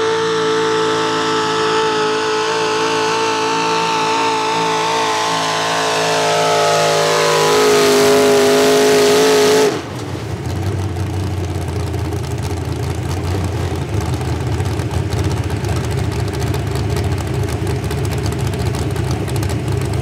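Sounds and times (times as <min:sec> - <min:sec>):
truck engine idling rumble: 0:09.7 - 0:20.0.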